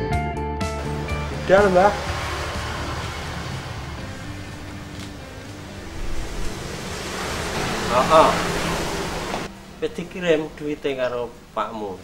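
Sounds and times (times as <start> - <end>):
rushing hiss: 0.8 - 9.6
man speaking: 7.9 - 8.4.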